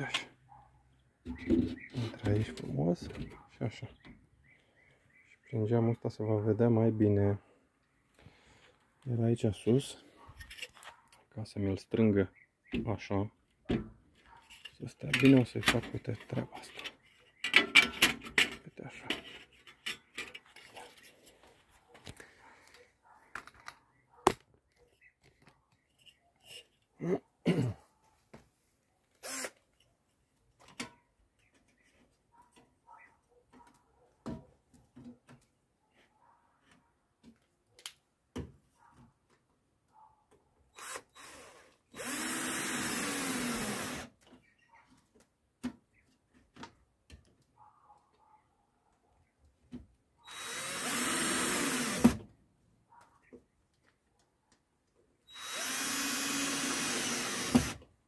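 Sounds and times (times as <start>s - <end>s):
cordless drill driving screw: 29.2s - 29.6s, 40.8s - 44.1s, 50.2s - 52.2s, 55.3s - 57.8s.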